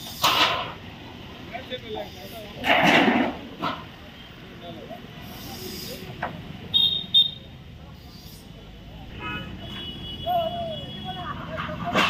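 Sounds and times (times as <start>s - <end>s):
traffic hum: 0.0s - 12.0s
vehicle horn tooting: 9.2s - 11.5s.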